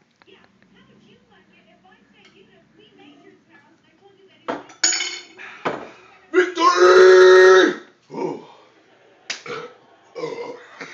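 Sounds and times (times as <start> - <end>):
glass clinking: 4.5 - 5.8
man yelling: 6.4 - 7.9.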